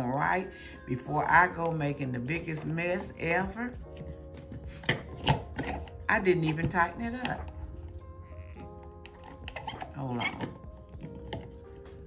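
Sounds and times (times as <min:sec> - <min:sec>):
quiet background music: 0:00.0 - 0:12.0
lid clicks and scrapes: 0:04.4 - 0:07.6, 0:08.6 - 0:11.6.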